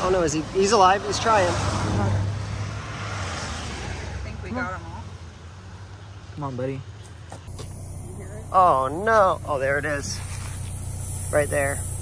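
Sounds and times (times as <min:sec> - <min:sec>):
vehicle engine rumble: 0:07.4 - 0:12.0.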